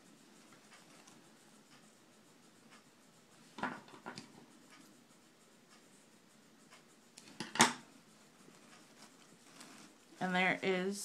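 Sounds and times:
fabric ribbon rustling: 8.4 - 10.3.

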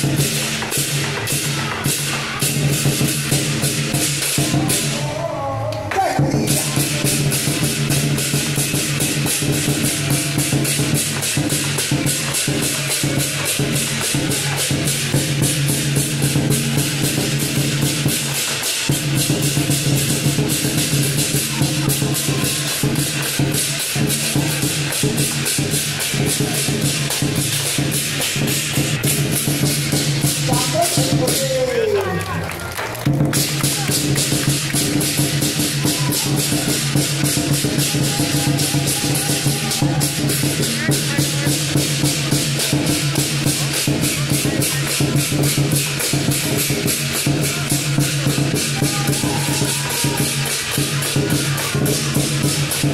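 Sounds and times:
large drum beating: 0.0 - 5.1, 5.9 - 31.7, 33.0 - 52.9
cymbals clashing: 0.0 - 5.2, 6.0 - 31.7, 33.3 - 52.9.

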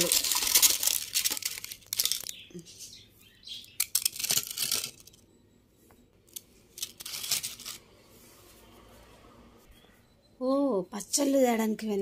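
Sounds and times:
papads crunching and snapping: 0.0 - 2.4.

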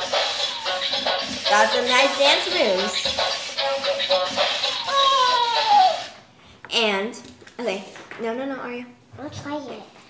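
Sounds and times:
toy robot electronic dance tune: 0.0 - 6.1.

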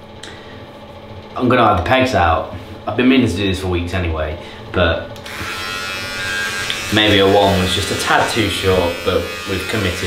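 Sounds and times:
electric hair trimmer buzzing: 5.2 - 10.0.

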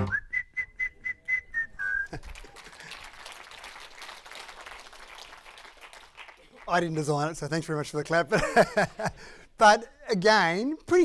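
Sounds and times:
held whistle note: 0.0 - 2.1
audience applause: 2.0 - 7.3.

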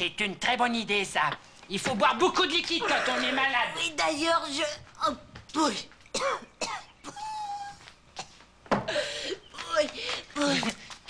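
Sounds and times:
woman coughing: 6.2 - 7.4.

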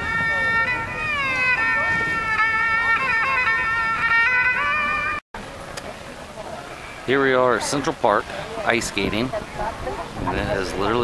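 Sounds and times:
two-string fiddle melody: 0.0 - 5.2
outdoor background noise: 0.0 - 11.0.

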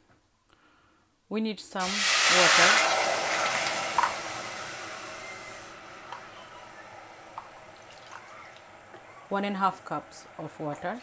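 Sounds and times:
water hissing in a hot pot: 1.8 - 8.9.

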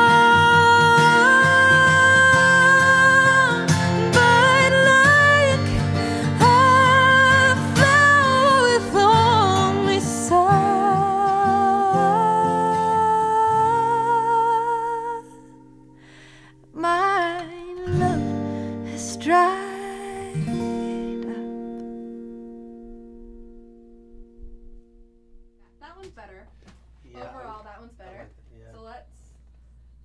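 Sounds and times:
woman singing: 0.0 - 15.7, 16.7 - 21.6
strummed acoustic guitar: 0.0 - 26.0.

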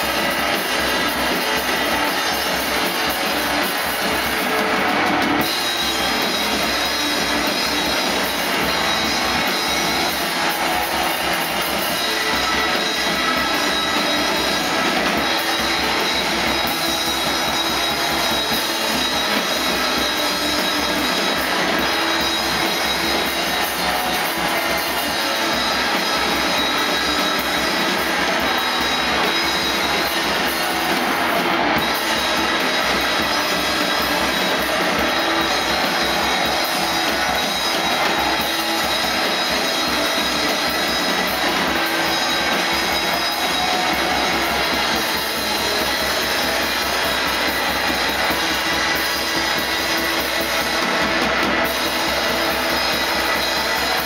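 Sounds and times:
distorted noise rock guitars: 0.0 - 54.0
drums and cymbals: 0.0 - 54.0
high feedback tones: 0.0 - 54.0.

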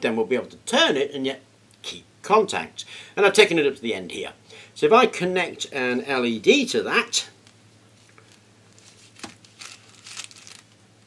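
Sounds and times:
paper crinkling: 8.1 - 10.8.

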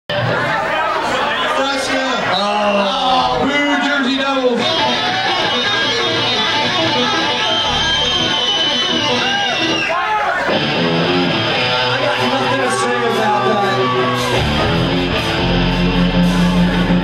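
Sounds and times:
electric guitars through amplifiers: 3.3 - 17.0.

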